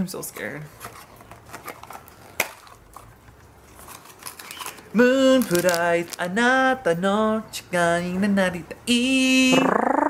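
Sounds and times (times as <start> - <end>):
plastic packaging crinkling: 0.7 - 6.8.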